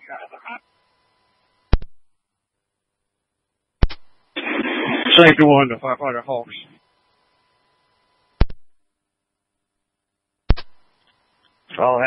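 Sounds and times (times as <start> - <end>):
radio static hiss: 0.0 - 2.1, 3.8 - 8.6, 10.5 - 12.0.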